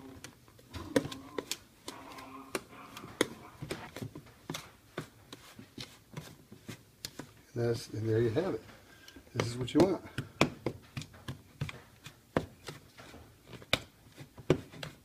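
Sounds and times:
crumbly mix rustling: 0:00.0 - 0:15.0.

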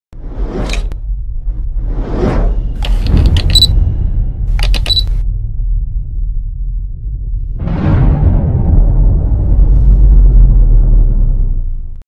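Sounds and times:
low rumbling drone: 0:00.8 - 0:12.0
short high beep: 0:03.3 - 0:03.7, 0:04.6 - 0:05.2.

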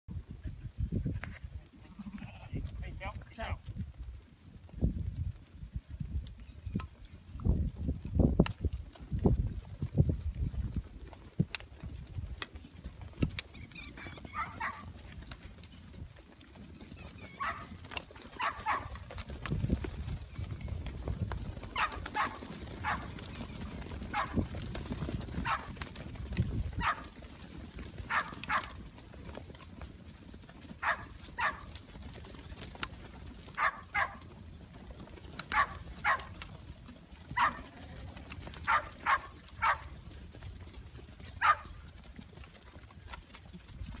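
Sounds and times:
many hooves on dry dirt: 0:00.1 - 0:44.0
sheep calls: 0:14.1 - 0:14.9.

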